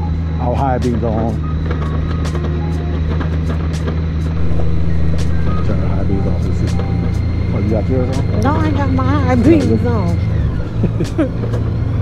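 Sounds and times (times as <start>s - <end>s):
motorcycle engine running: 0.1s - 12.0s.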